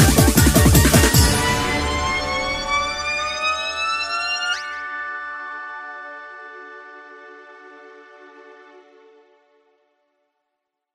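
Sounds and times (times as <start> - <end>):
synthesizer note gliding upward: 0.0 - 9.3.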